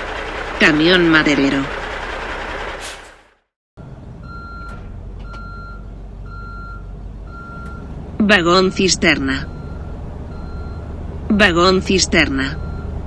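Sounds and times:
road noise: 0.0s - 13.0s
truck engine rumbling: 0.0s - 13.0s
reversing alarm beeps: 4.2s - 7.9s, 9.2s - 10.9s, 12.4s - 13.0s.

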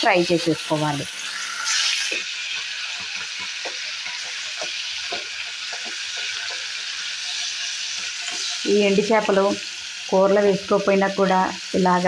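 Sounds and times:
fish sizzling in hot oil: 0.0s - 12.0s
spatula ticking: 2.1s - 8.5s.

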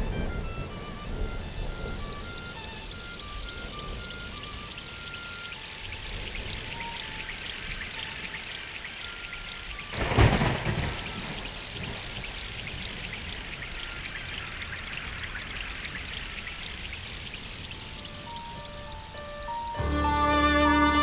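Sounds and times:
falling rain hiss: 0.0s - 21.0s
thunder clap rumbling: 0.0s - 21.0s.

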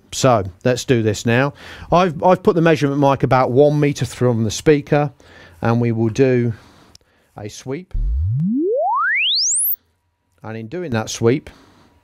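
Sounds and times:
sine sweep tone rising: 7.9s - 9.8s.

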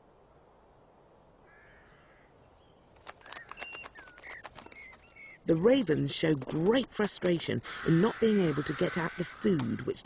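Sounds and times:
raven calls: 1.4s - 2.4s, 7.6s - 10.0s
raven clicks: 2.9s - 10.0s.

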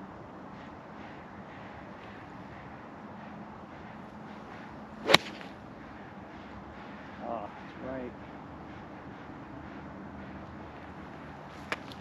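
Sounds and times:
golf club striking ball: 5.0s - 5.5s
golf club swish: 5.0s - 5.6s.

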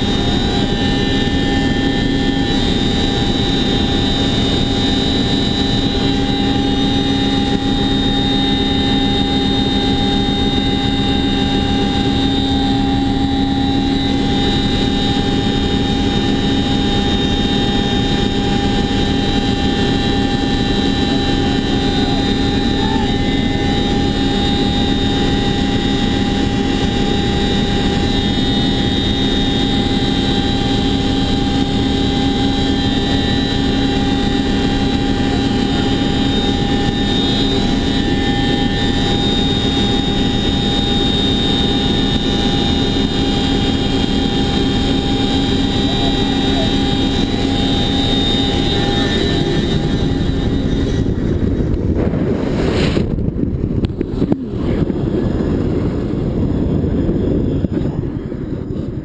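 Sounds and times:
helicopter engines and rotors droning: 0.0s - 59.0s
high whining tones: 0.0s - 59.0s
rush of air: 49.4s - 58.8s.

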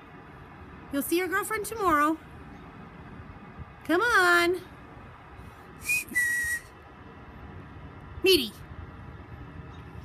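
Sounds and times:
person whistling: 5.8s - 6.7s.

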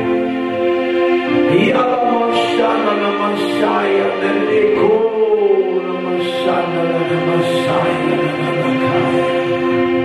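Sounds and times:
held chords: 0.0s - 10.0s
person singing: 1.3s - 9.8s.

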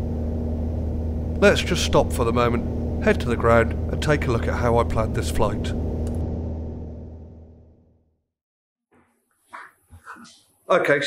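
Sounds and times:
airplane engine droning: 0.0s - 8.0s.

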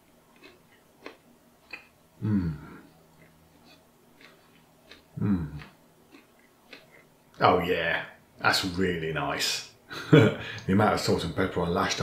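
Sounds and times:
person chewing with closed lips: 0.1s - 7.2s.

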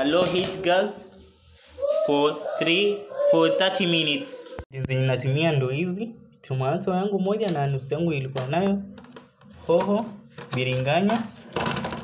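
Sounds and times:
person speaking: 1.8s - 9.0s.

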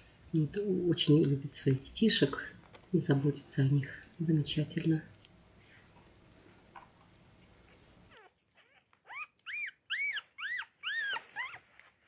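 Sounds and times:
puppy crying: 8.1s - 11.9s.

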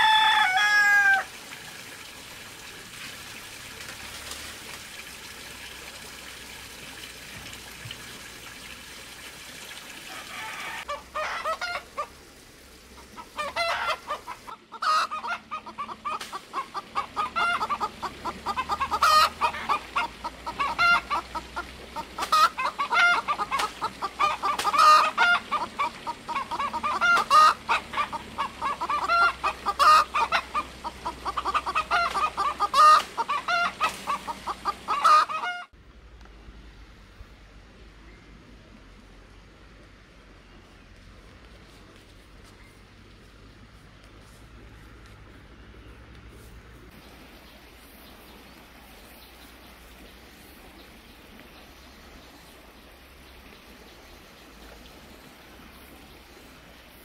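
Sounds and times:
rain hissing: 0.6s - 35.2s
chickens clucking: 10.1s - 12.1s, 13.0s - 35.8s.

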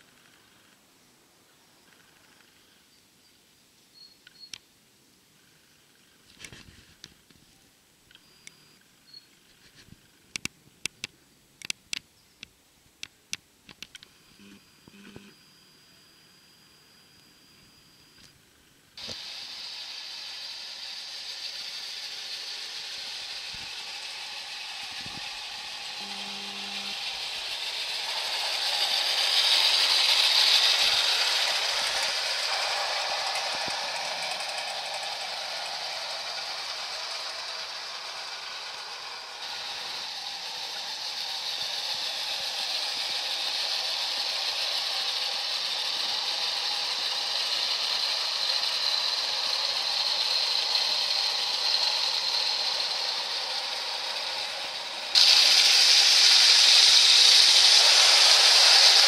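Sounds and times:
toy train wheels rattling over rails: 13.0s - 18.3s, 19.0s - 59.0s
clockwork motor whirring: 19.0s - 59.0s.

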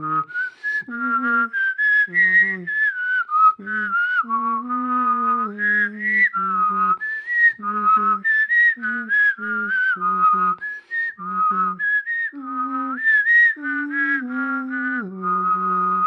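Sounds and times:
person voicing a lower line: 0.0s - 2.9s, 12.4s - 13.0s, 13.6s - 16.0s
person whistling a melody: 0.0s - 16.0s.

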